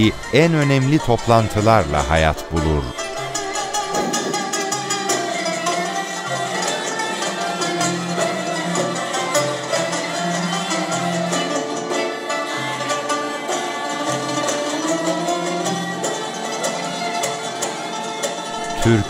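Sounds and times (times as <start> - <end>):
low held notes: 0.0 - 5.1, 18.5 - 19.0
bowed lute: 0.0 - 19.0
hammered dulcimer: 0.0 - 19.0
plucked lutes: 0.0 - 19.0
violin: 0.0 - 19.0.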